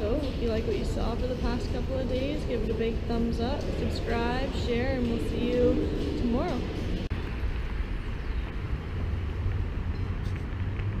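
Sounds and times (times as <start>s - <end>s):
low rumble of traffic: 0.0s - 11.0s.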